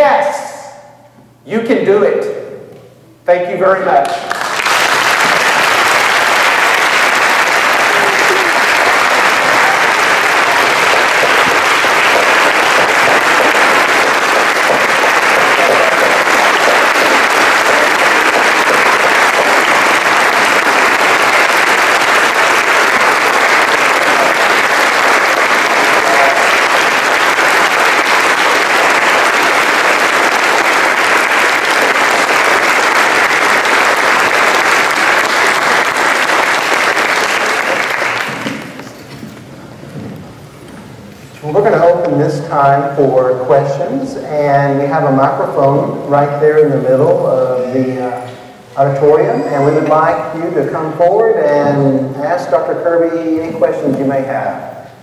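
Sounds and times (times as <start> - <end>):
large audience applauding: 4.1 - 39.0, 47.6 - 52.1.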